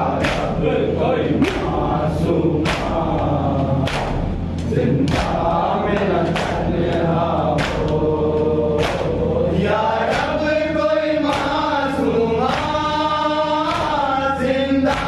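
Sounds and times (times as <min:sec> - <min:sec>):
men chanting a lament: 0:00.0 - 0:15.0
rhythmic chest-beating strikes: 0:00.0 - 0:15.0.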